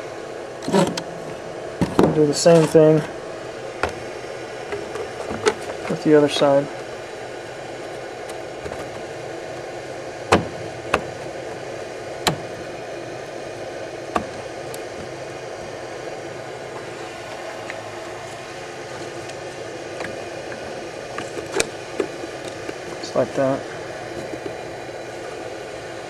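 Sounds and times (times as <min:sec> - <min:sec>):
steady background hiss: 0:00.0 - 0:26.0.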